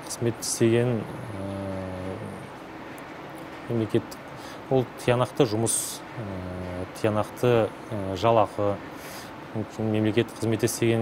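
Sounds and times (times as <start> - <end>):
man saying uhh: 1.0 - 2.5.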